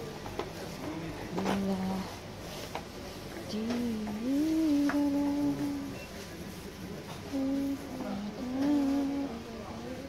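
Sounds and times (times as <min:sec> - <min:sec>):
woman humming: 0:07.3 - 0:09.8.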